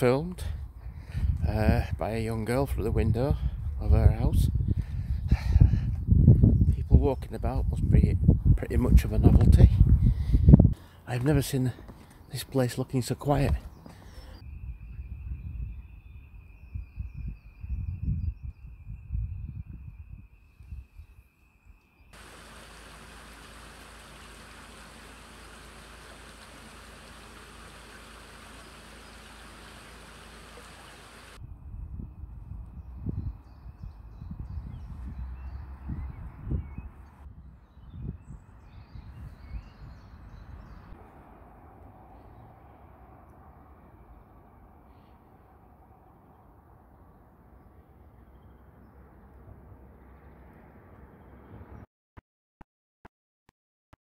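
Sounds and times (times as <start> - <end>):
wind and handling rumble on microphone: 0.4 - 12.3, 31.1 - 41.0
stream running over stones: 22.2 - 31.4.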